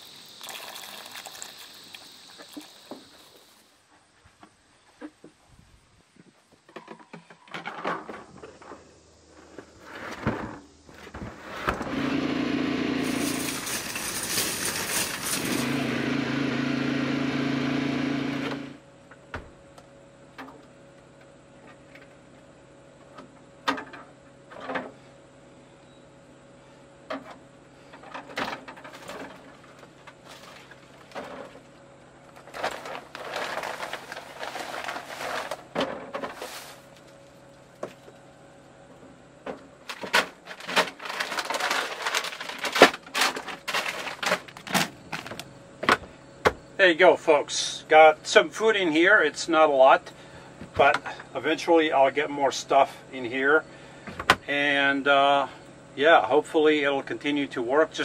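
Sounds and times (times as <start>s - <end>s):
loud low hum: 11.7s - 19.2s
plastic bag rustling: 13.0s - 15.8s, 32.3s - 37.1s, 39.9s - 45.4s.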